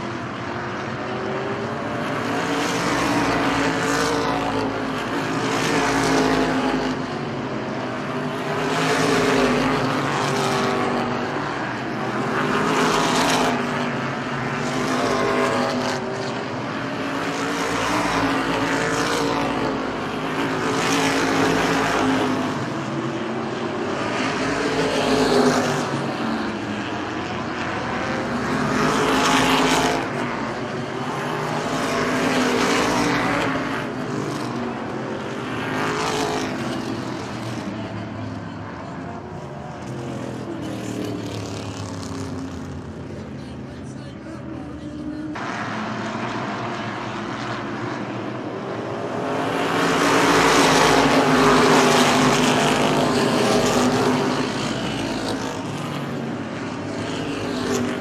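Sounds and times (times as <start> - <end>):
race car engines passing by: 0.0 - 58.0.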